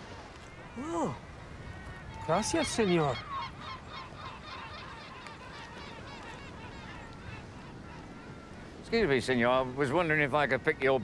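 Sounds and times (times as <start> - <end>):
gulls calling: 0.2 - 11.0.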